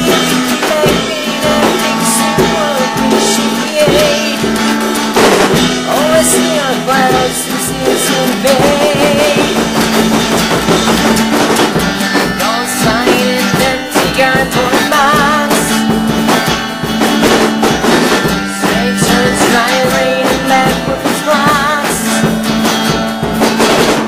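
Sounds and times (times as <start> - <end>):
electric guitar vibrato notes: 0.0 - 23.7
drum beat: 0.0 - 24.0.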